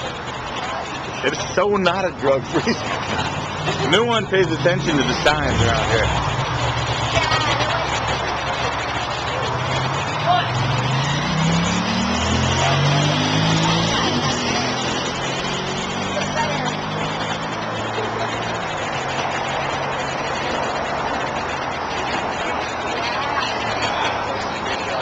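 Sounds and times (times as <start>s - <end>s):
street traffic: 0.0s - 25.0s
vehicle accelerating past: 2.6s - 25.0s.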